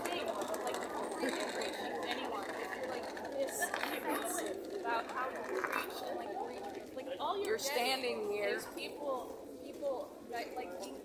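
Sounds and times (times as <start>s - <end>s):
background chatter of voices: 0.0s - 11.0s
street ambience: 0.0s - 11.0s.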